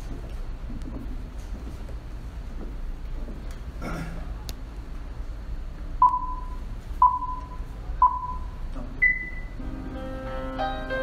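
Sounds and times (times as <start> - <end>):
electronic countdown beeps: 6.0 - 9.6.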